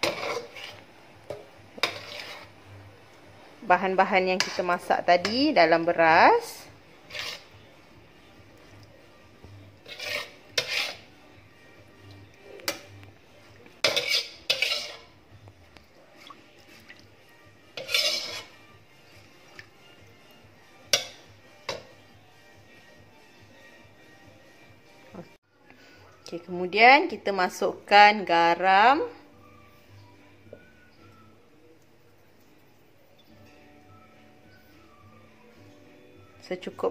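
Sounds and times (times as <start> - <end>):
metal spoon scraping metal pots: 0.0 - 2.6, 3.9 - 7.7, 9.7 - 11.4, 12.0 - 15.2, 17.7 - 22.1.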